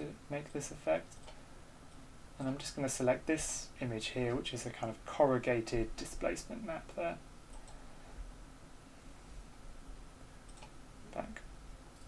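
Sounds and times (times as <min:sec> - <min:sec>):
faint computer mouse clicks: 0:00.5 - 0:01.4, 0:10.5 - 0:10.8.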